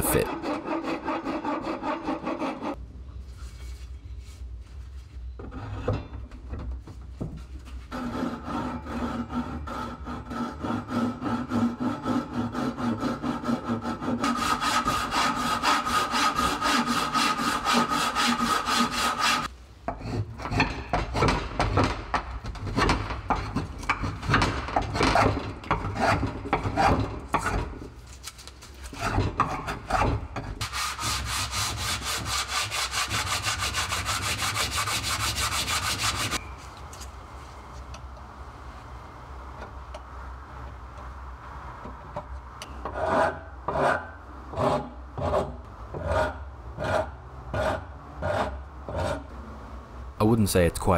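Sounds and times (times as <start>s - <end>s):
hand saw cutting wood: 0.0s - 2.8s, 7.9s - 21.8s, 22.7s - 27.8s, 28.9s - 36.4s, 42.9s - 49.3s
hand tool rasping wood: 7.9s - 21.8s, 28.9s - 36.4s.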